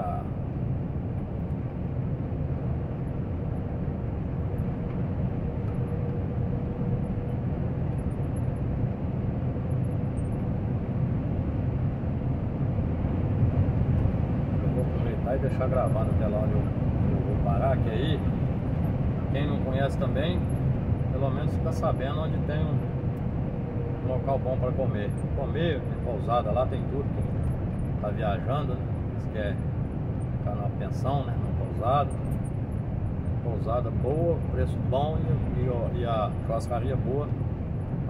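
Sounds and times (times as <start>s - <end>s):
truck engine and tyre drone: 0.0s - 38.0s.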